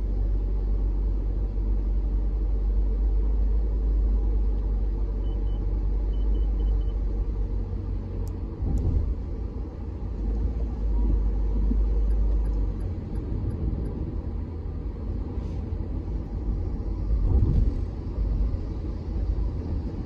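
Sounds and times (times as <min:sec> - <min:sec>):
car cabin rumble on wet road: 0:07.0 - 0:20.0.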